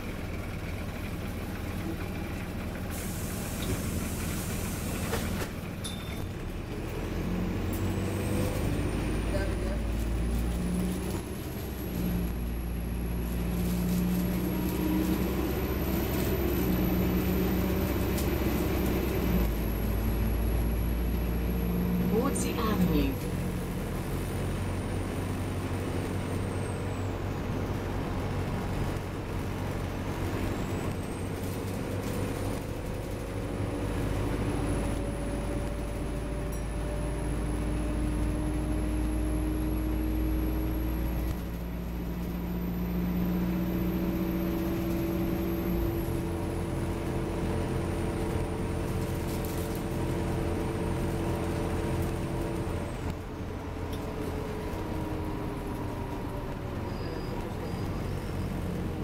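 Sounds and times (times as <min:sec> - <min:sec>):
bus engine drone: 0:00.0 - 0:59.0
hiss of air: 0:02.9 - 0:05.2.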